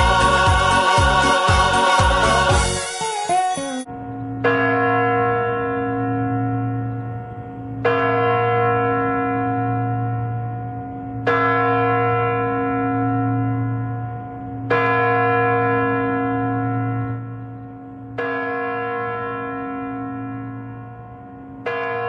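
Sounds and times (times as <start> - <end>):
steady deep hum: 0.0 - 2.8.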